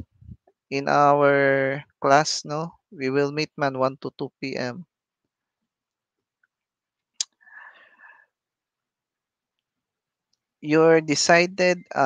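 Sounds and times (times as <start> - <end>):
person whispering: 0.8 - 4.8, 10.7 - 12.0.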